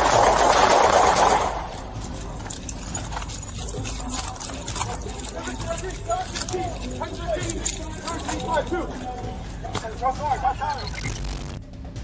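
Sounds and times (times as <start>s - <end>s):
clicks and rustling of gear: 0.0s - 11.6s.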